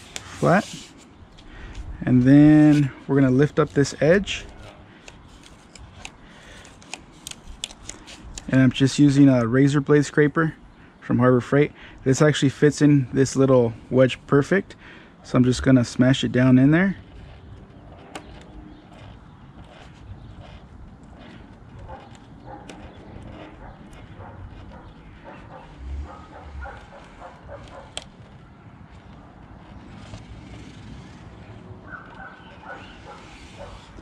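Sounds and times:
masking tape handling: 0.0 - 8.8, 15.9 - 34.0
scraper pressing tape: 0.0 - 9.4, 15.8 - 34.0
low outdoor background: 0.0 - 34.0.

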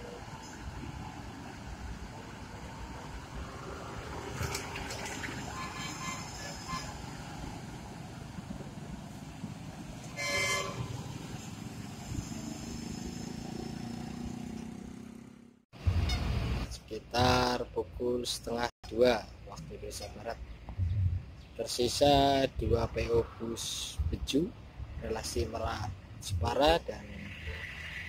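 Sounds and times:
bus diesel engines rumbling: 0.0 - 28.0
bus horn toot: 5.5 - 7.1, 10.1 - 11.1, 16.0 - 16.4.

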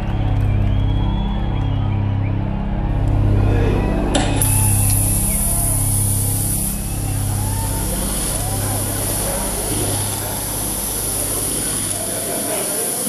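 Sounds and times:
crowd chattering and calling out: 0.0 - 13.0
low pulsing drone: 0.0 - 13.0.

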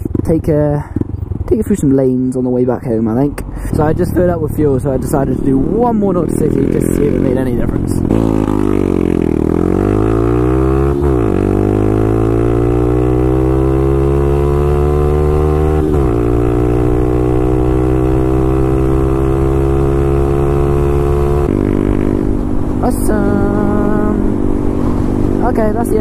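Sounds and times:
motorcycle engine accelerating: 0.0 - 26.0.

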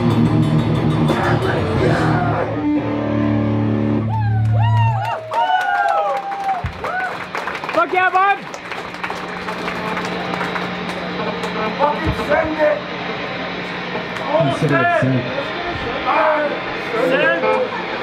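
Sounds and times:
amplifier electric hum: 0.0 - 5.2, 5.9 - 18.0
people talking indistinctly: 10.9 - 18.0.

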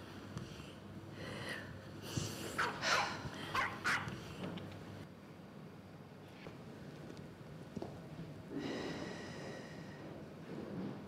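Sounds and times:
dog barking: 2.6 - 4.1.

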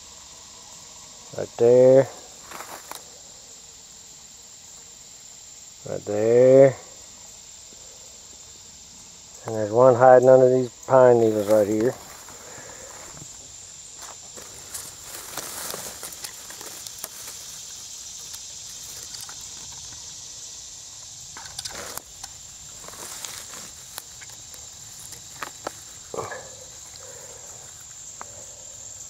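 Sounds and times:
insects droning: 0.0 - 29.0
footsteps rustling dry pine needles: 2.4 - 3.0, 11.2 - 19.6, 21.7 - 27.9.

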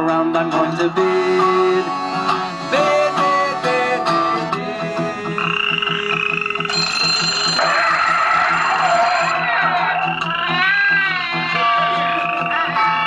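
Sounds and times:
strummed acoustic guitar: 0.0 - 13.0
piano accordion chords: 1.0 - 7.3.

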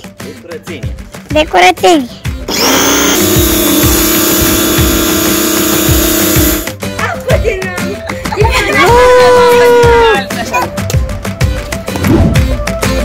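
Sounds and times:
background music with beat: 0.0 - 13.0
pressure washer humming and hissing: 2.5 - 6.7.

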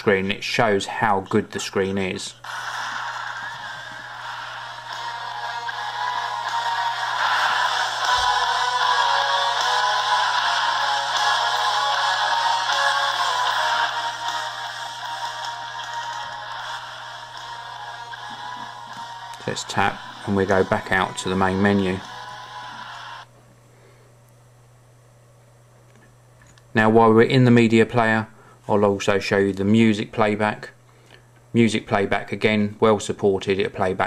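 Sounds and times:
trailer music on small loudspeaker: 2.4 - 23.3.

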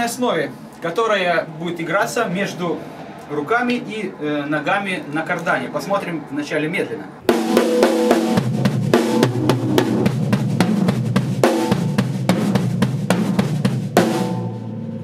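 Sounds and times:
acoustic drum kit playing: 7.3 - 15.0.

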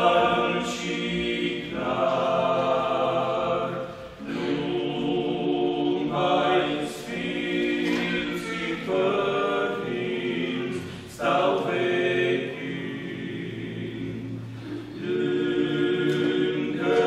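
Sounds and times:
male vocal ensemble singing carol: 0.0 - 17.0.

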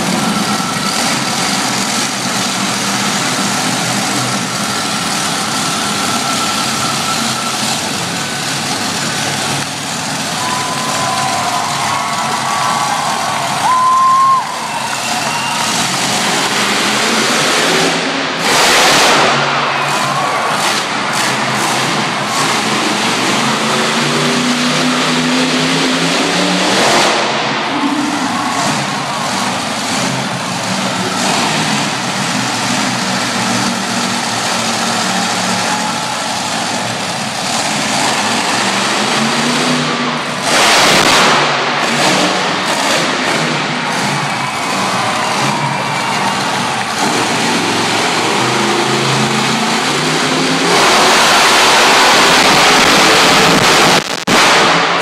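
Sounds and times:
truck engine revving: 0.0 - 55.0.

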